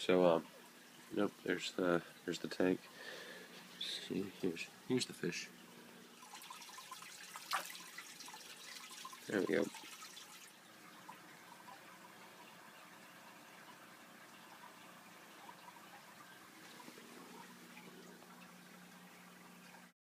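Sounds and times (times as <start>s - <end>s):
low steady hum: 0.0s - 19.9s
water trickling into aquarium: 0.0s - 20.0s.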